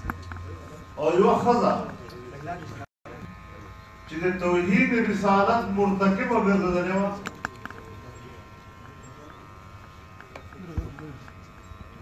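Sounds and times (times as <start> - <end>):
electrical buzz: 0.0 - 12.0.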